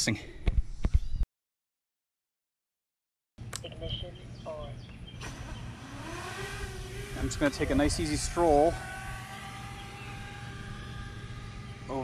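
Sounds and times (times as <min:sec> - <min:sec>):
drone propellers humming: 0:03.8 - 0:12.0
man speaking: 0:07.2 - 0:08.8.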